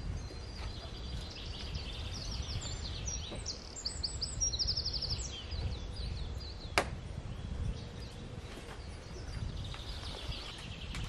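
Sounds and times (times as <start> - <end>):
songbird singing with trill: 0.0 - 11.0.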